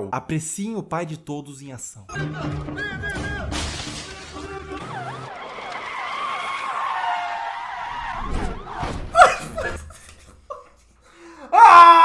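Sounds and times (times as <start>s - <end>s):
film music score: 2.1s - 5.9s
police siren wailing: 4.4s - 9.0s.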